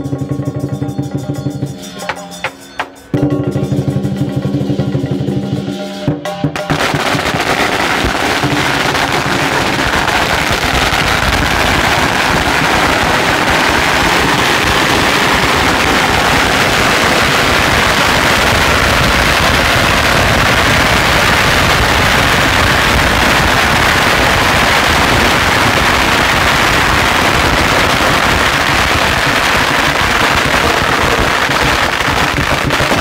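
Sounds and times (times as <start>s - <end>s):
drum and cymbal music: 0.0s - 11.4s
firecrackers crackling: 6.6s - 33.0s.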